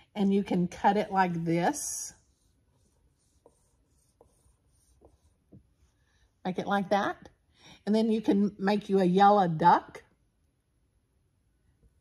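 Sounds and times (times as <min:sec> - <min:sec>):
marker scratching on whiteboard: 0:00.8 - 0:06.4.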